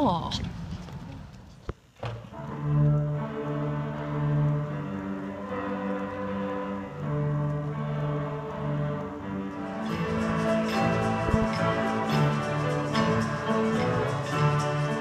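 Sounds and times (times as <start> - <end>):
string orchestra playing: 2.3 - 15.0.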